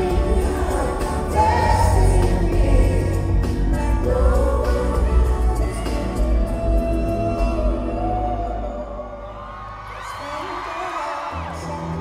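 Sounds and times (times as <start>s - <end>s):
male group vocal harmonies: 0.0s - 9.4s
live pop ballad through pa: 0.0s - 12.0s.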